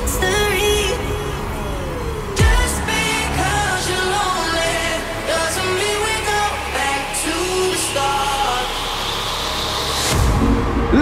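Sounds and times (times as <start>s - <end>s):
electronic dance music: 0.0s - 11.0s
heavy bass: 0.0s - 11.0s.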